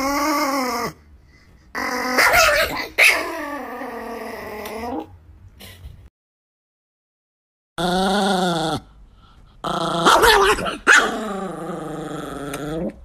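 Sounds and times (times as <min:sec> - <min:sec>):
dog growling and whining: 0:00.0 - 0:01.1, 0:01.7 - 0:05.2, 0:07.8 - 0:09.0, 0:09.6 - 0:13.0.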